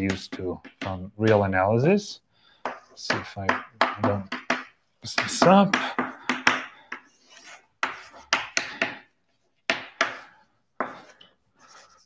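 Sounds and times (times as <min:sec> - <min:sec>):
chalk tapping and scraping on blackboard: 0:00.0 - 0:01.5, 0:02.6 - 0:12.0.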